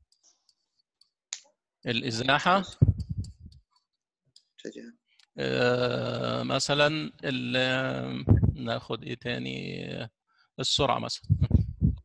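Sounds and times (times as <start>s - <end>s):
man speaking: 1.9s - 3.0s, 4.6s - 11.7s
stylus tapping pen tablet: 2.8s - 3.6s.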